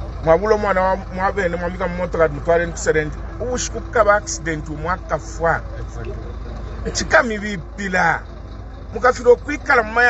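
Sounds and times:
low background rumble: 0.0 - 10.0
man speaking: 0.2 - 6.2, 6.8 - 8.2, 8.9 - 10.0.

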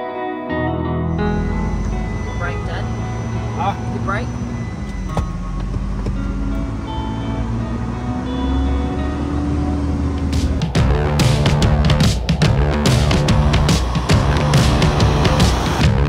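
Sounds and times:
background music: 0.0 - 16.0
diesel truck engine running: 1.0 - 16.0.

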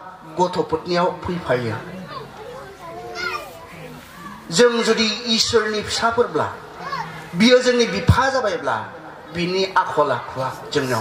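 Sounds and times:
man preaching over amplification: 0.0 - 1.9, 4.5 - 6.6, 7.3 - 11.0
children chattering and calling: 0.0 - 11.0.

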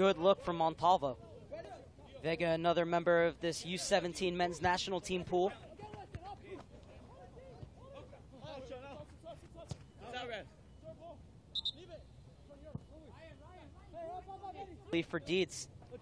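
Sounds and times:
players calling out: 0.0 - 16.0.

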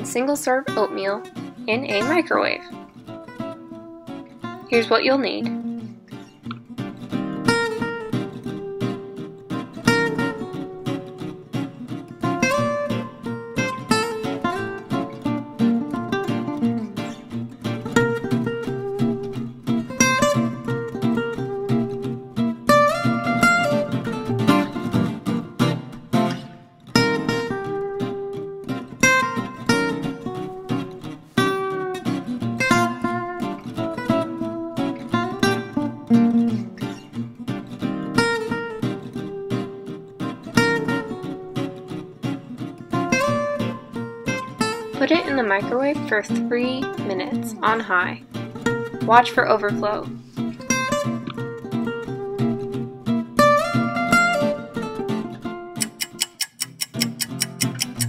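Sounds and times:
acoustic guitar melody: 0.0 - 58.0.

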